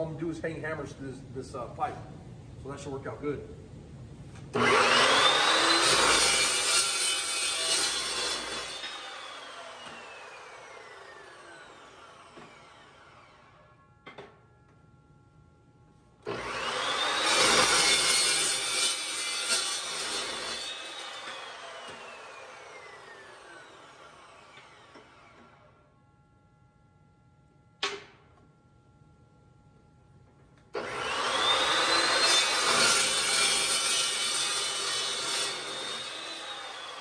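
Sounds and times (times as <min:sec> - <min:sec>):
chop saw cutting steel pipe: 0:04.6 - 0:14.3, 0:16.2 - 0:25.6, 0:30.8 - 0:37.0.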